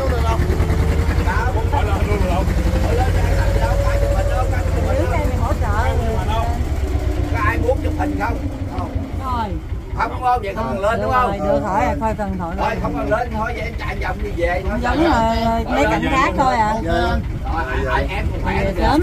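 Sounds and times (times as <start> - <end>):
boat engine rumbling: 0.0 - 19.0.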